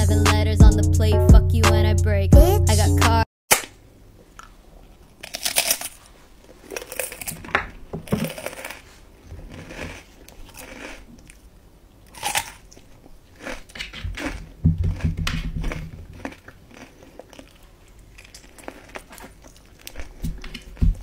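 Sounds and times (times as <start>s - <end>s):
crunchy biting of snack: 5.2s - 7.5s, 8.1s - 21.0s.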